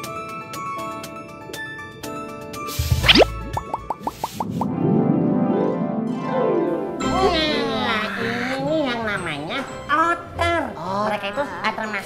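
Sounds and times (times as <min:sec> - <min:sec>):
fast rising swoop: 0:02.7 - 0:04.7
bouncy cartoon melody: 0:02.8 - 0:04.7
short rising blips: 0:02.8 - 0:04.7.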